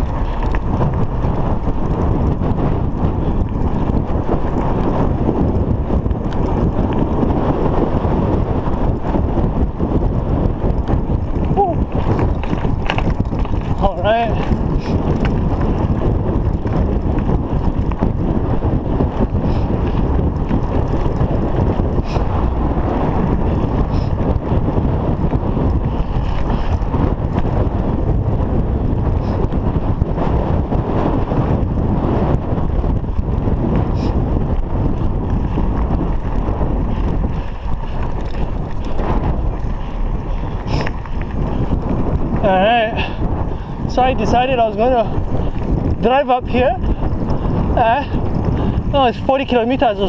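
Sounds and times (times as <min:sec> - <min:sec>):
bike tyres rolling on dirt: 0:00.0 - 0:50.0
wind buffeting microphone: 0:00.0 - 0:50.0
person speaking: 0:43.9 - 0:45.2.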